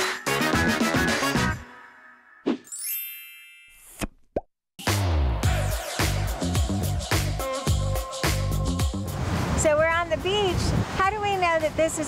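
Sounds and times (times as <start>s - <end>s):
upbeat funky music: 0.0s - 1.7s, 4.8s - 9.2s
sparkly cartoon chime: 2.7s - 3.9s.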